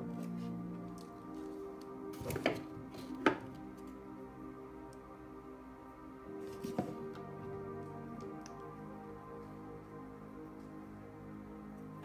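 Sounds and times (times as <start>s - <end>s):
soft ambient background music: 0.0s - 12.0s.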